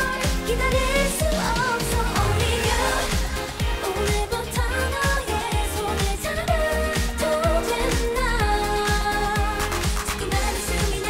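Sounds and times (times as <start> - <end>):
girl group singing: 0.0 - 11.0
upbeat pop backing track: 0.0 - 11.0.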